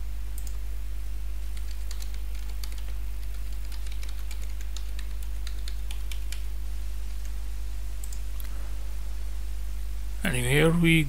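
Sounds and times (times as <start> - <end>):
steady low hum: 0.0 - 11.0
computer keyboard key clicks: 1.6 - 6.5.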